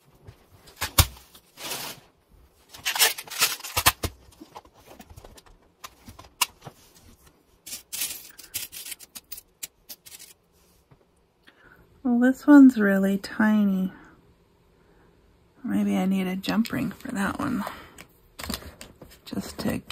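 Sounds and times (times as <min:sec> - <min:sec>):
metal charms clinking in plastic box: 0:07.7 - 0:10.4.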